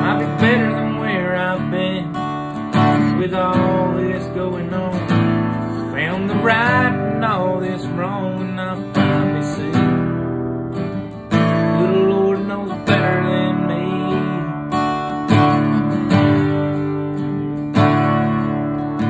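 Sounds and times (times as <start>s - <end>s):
acoustic guitar strummed: 0.0s - 19.0s.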